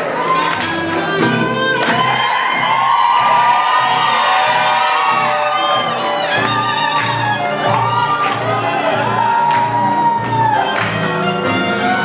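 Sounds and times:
crowd cheering and whooping: 0.0 - 12.0
live band playing blues: 0.1 - 12.0.

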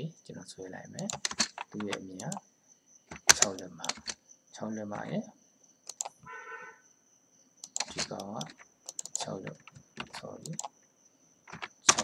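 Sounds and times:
keyboard and mouse clicks: 1.0 - 2.4, 3.1 - 4.2, 5.8 - 6.2, 7.6 - 10.8, 11.5 - 12.0
people talking: 1.8 - 2.4, 3.4 - 4.0, 4.6 - 5.3, 7.9 - 8.6, 9.2 - 10.6.

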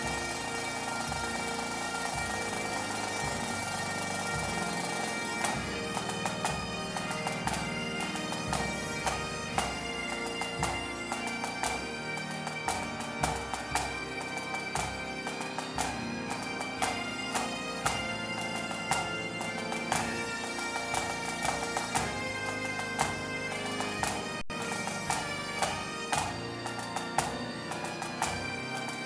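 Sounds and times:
bagpipes playing over drones: 0.0 - 29.0.

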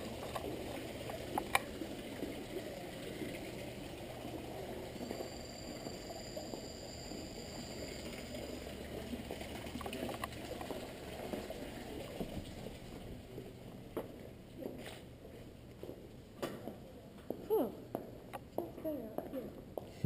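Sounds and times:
water running and gurgling: 0.0 - 13.6
thin high tone: 3.4 - 9.2.

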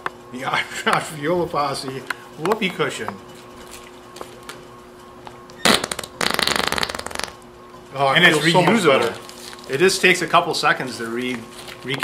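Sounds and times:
whoopee cushion fart noise: 5.6 - 7.4.

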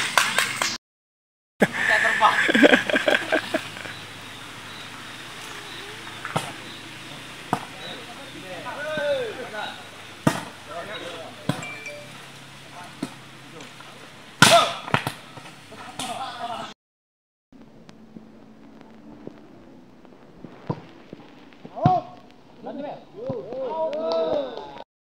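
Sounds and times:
players shouting: 7.7 - 9.9, 21.8 - 24.8.

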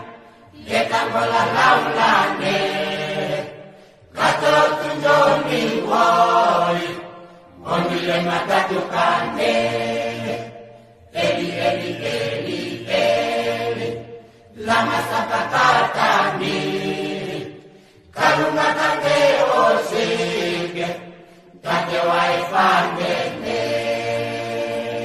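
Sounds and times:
gospel singing with backing: 0.0 - 25.0.

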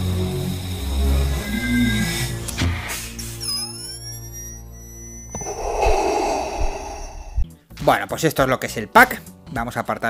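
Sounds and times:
loud breathy hiss: 5.4 - 7.4.

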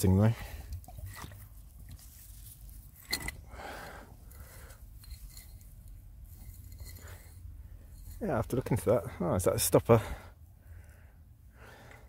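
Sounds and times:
hands scraping in wet soil: 0.8 - 3.1.

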